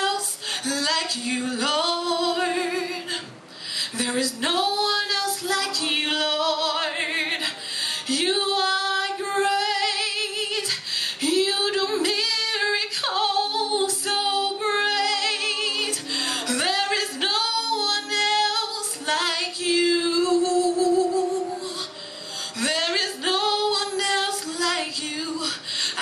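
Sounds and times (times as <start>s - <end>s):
woman singing gospel song: 0.0s - 26.0s.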